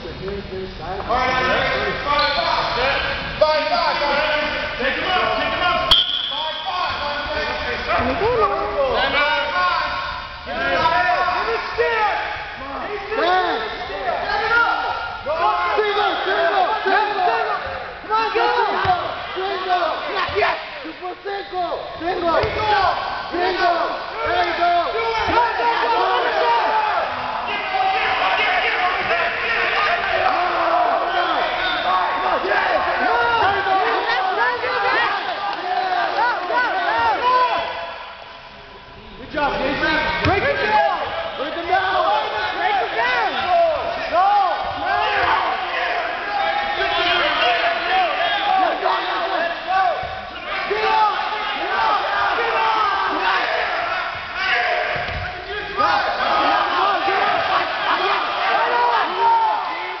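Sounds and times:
crowd shouting and talking: 0.0 - 60.0.

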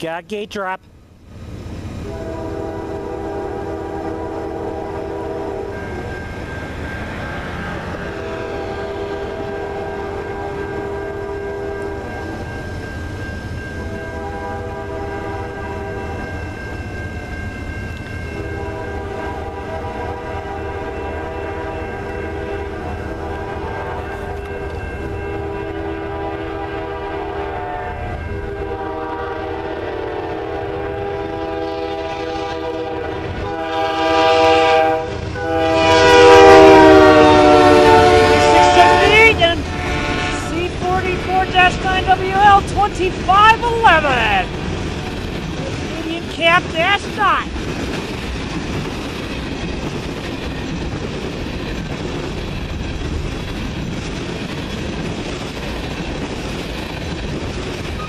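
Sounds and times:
rumble of moving train: 0.8 - 58.0
train air horn blasts: 2.0 - 5.8, 7.7 - 12.3, 13.8 - 16.2, 18.4 - 42.9.

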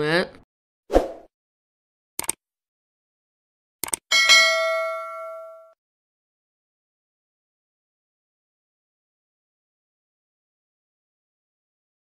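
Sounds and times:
bell-like notification ding: 4.1 - 5.8.

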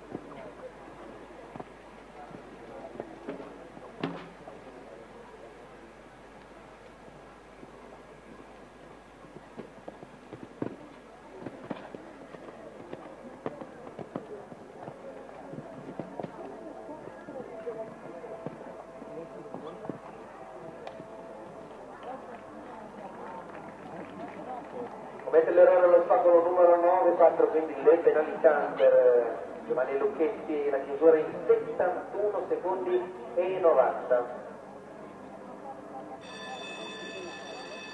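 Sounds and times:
voices murmuring: 0.0 - 37.9.

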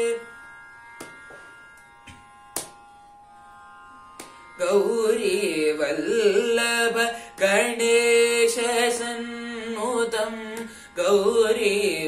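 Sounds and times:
tanpura drone: 0.0 - 12.0
sharp hand claps: 1.0 - 1.4, 2.5 - 2.8, 4.2 - 4.4.

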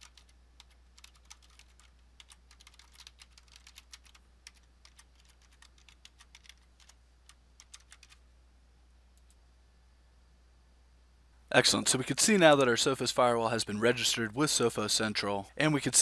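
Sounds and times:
typing on computer keyboard: 0.0 - 8.2.

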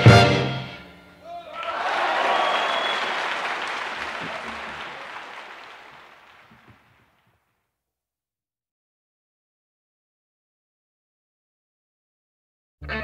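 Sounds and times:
audience applause: 1.3 - 7.2.

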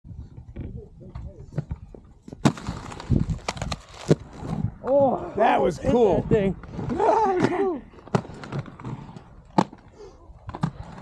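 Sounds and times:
wind rumble on microphone: 0.0 - 5.2, 5.8 - 7.0.

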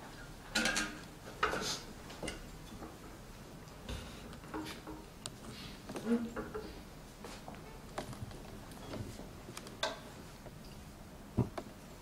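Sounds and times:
soft handling clicks and rustles: 0.6 - 12.0.

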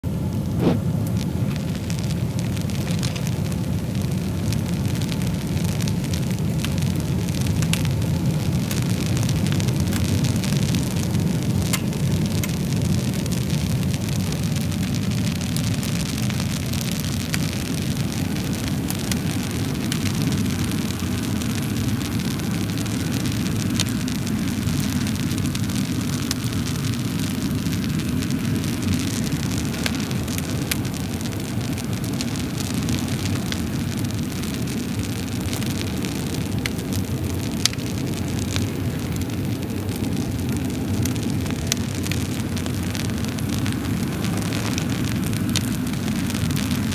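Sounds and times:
fire crackling and popping: 0.0 - 46.9
low rumble of flames: 0.0 - 46.9.

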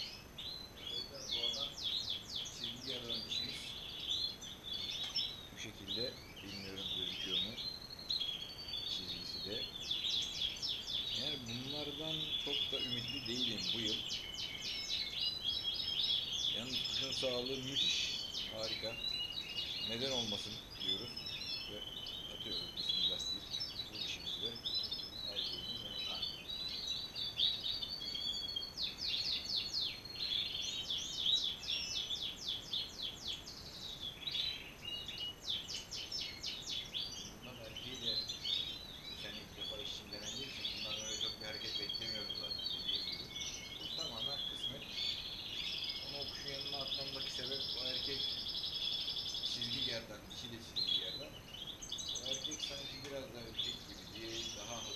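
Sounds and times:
fast bird trills: 0.0 - 54.9
finches singing and chirping: 0.0 - 54.9.

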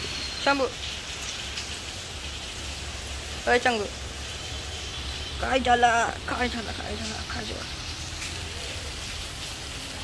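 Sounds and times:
rain hissing: 0.0 - 10.0.

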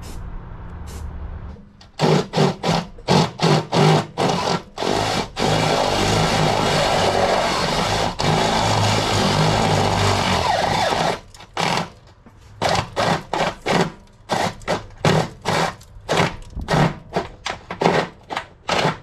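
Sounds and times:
electric drill boring through steel: 2.0 - 11.9.

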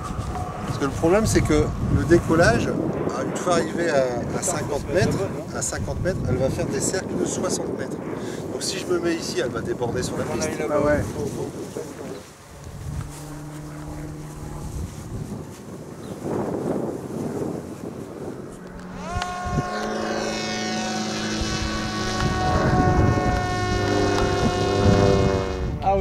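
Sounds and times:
drone motor and propeller whine: 0.0 - 26.0
wind buffeting microphone: 0.0 - 26.0.

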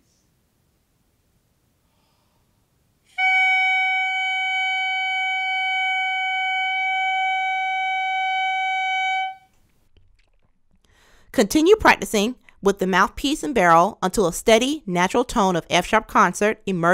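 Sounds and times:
clarinet mouthpiece steady tone: 3.1 - 9.6.

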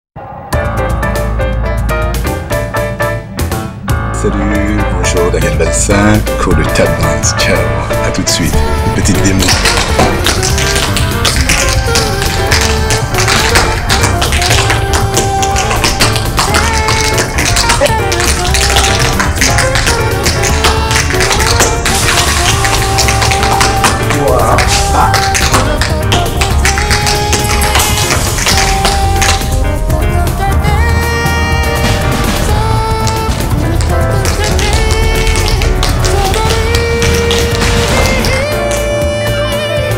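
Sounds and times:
latin techno music: 0.2 - 39.9
tap shoes striking floor: 9.1 - 29.6, 31.8 - 39.0.

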